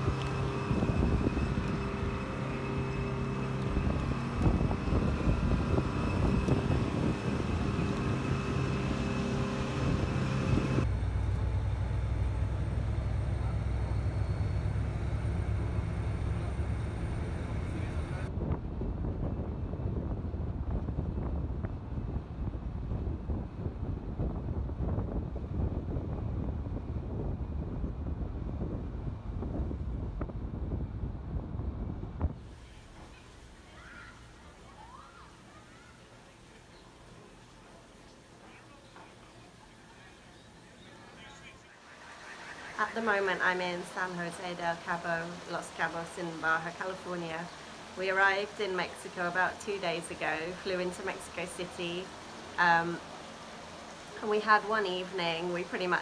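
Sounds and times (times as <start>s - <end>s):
bus engine drone: 0.0s - 56.0s
road noise: 0.0s - 56.0s
vehicle engine hum: 0.0s - 56.0s.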